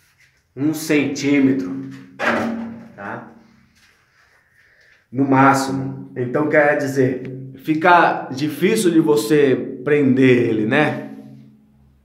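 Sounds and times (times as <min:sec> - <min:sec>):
man speaking: 0:00.6 - 0:02.0, 0:02.9 - 0:03.4, 0:05.1 - 0:11.2.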